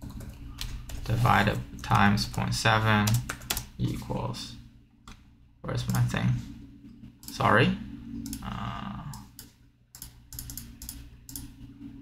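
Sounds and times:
steady low hum: 0.0s - 12.0s
computer keyboard key presses: 9.2s - 11.5s.

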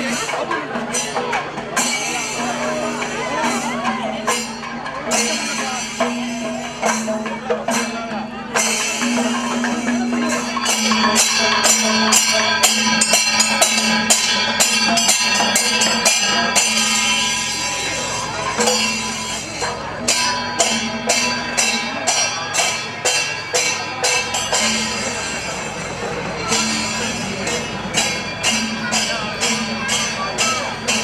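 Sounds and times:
tambourine-like percussion strikes: 0.0s - 31.0s.

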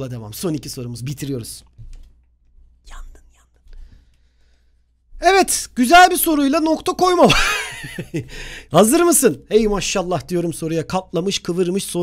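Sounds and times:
man whispering: 2.8s - 3.7s.

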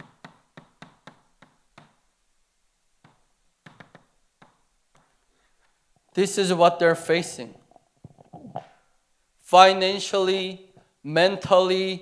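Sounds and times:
chalk tapping and scratching: 0.0s - 2.0s, 3.0s - 5.2s.

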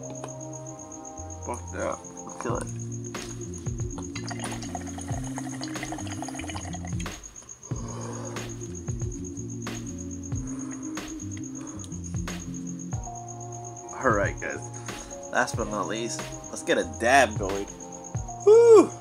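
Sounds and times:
music with bass line and beat: 2.4s - 13.5s, 14.1s - 16.6s.

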